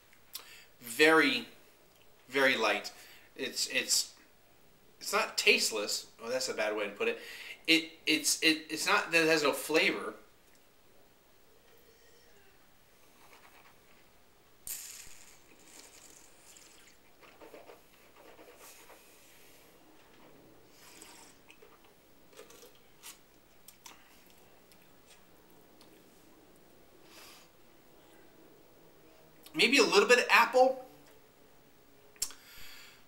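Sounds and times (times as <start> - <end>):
soft clicks and mouth noises: 0.1 - 0.5, 1.9 - 2.3, 10.4 - 10.7, 20.1 - 26.7, 32.2 - 32.4
air drawn through mouth: 14.7 - 17.1, 20.7 - 21.9.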